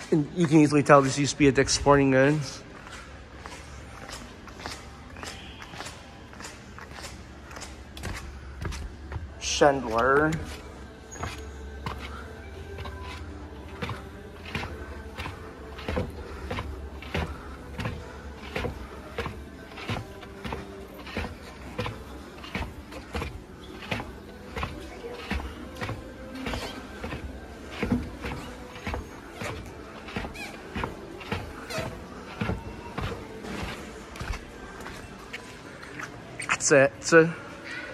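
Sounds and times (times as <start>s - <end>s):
sneaker footsteps on tile floor: 0.0s - 12.2s, 12.8s - 36.2s.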